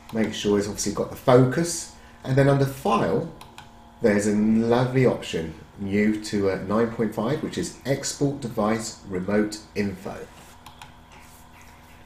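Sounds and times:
room hum: 0.0 - 12.0
computer mouse clicks: 3.4 - 3.7, 10.6 - 11.2.

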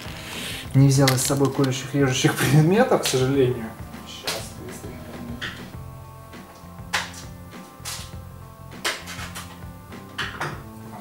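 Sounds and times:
plastic packaging crackling: 0.0 - 2.0
quiet background music: 0.0 - 11.0.

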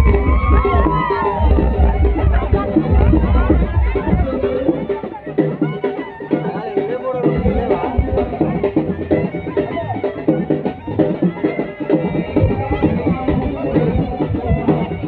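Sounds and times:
drums beating quick rhythm: 0.0 - 15.0
reed pipe wavering melody: 0.0 - 15.0.

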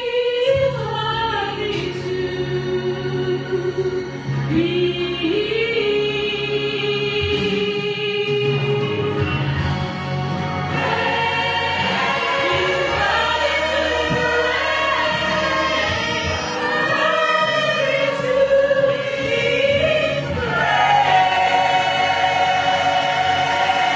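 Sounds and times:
choir singing a hymn: 10.6 - 23.9.

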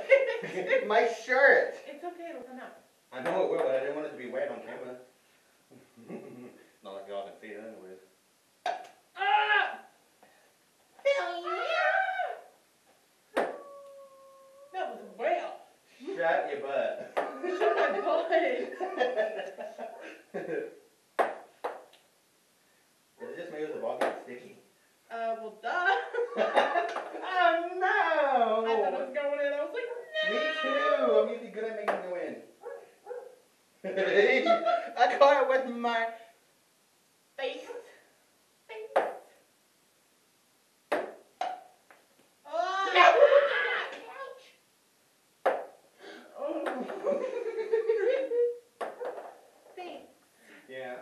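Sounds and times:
person shouting: 9.2 - 9.9, 11.0 - 12.5, 30.1 - 31.2, 42.5 - 44.1
ping-pong ball bouncing: 21.2 - 21.9, 38.9 - 39.2, 40.9 - 41.7.

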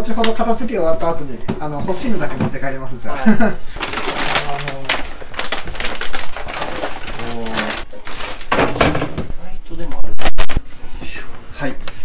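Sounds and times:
plastic pouches crinkling: 3.7 - 9.1.

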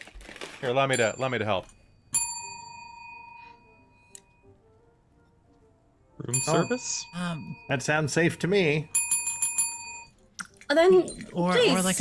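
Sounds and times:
small bell ringing: 0.9 - 4.5, 6.3 - 10.2.

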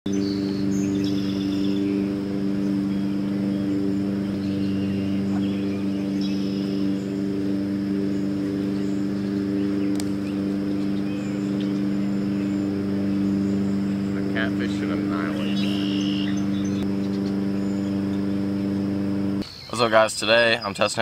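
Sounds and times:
high insect drone: 0.1 - 19.4
low motor hum: 0.1 - 19.4
birds chirping: 0.1 - 21.0.

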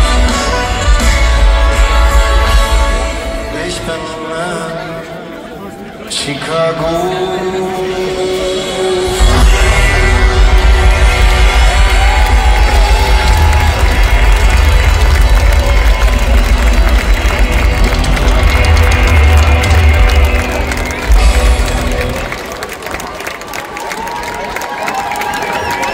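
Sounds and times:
live band playing with heavy bass: 0.0 - 4.8, 7.7 - 22.7
crowd cheering: 9.0 - 25.9.

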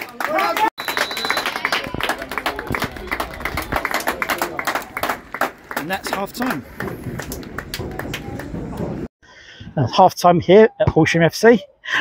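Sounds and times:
spectators applauding: 0.0 - 8.7
referee's whistle: 0.8 - 2.0.

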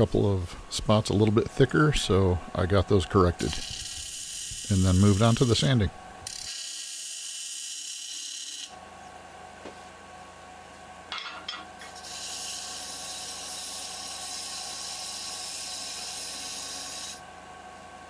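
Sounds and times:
sandpaper hissing on spinning wood: 3.4 - 5.7, 6.3 - 8.7, 11.9 - 17.2.

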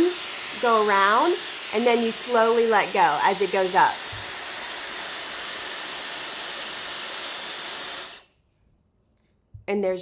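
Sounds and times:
hair styler blowing air: 0.0 - 8.3.

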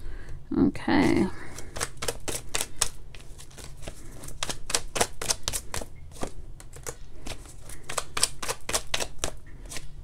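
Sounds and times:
cards shuffling: 1.0 - 10.0.

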